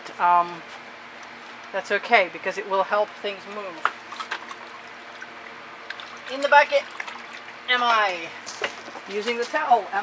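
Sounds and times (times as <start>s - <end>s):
water trickling: 3.5s - 8.6s.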